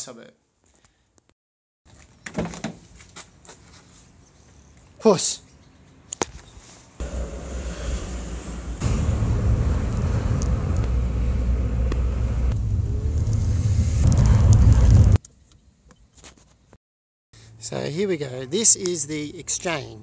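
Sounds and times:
car cabin road and engine rumble: 7.0 - 15.2.

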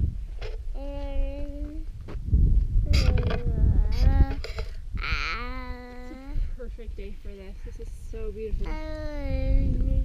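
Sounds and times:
wind rumble on microphone: 0.0 - 10.0
toddler babbling: 0.8 - 1.8, 2.9 - 6.4, 8.6 - 9.7.

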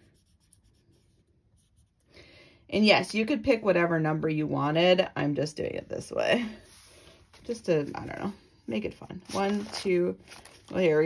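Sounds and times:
marker scratching on paper: 0.0 - 2.0.

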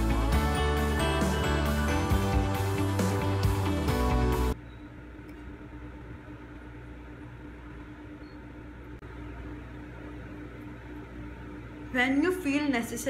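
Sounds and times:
constant low hum: 4.4 - 13.0.

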